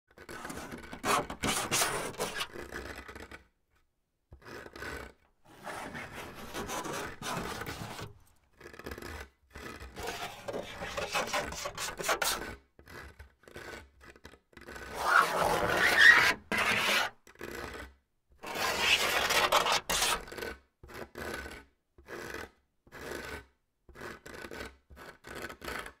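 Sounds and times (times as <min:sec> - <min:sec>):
fingernails scratching: 0:00.2 - 0:03.4, 0:04.4 - 0:13.8, 0:14.7 - 0:17.8, 0:18.4 - 0:20.5.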